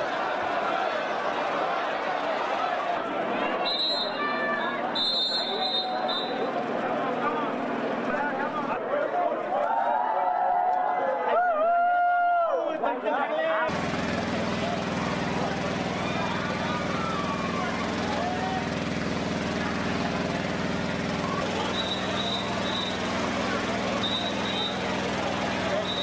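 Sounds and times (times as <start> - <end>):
faint voices: 13.1 - 26.0
low mechanical drone: 13.7 - 26.0.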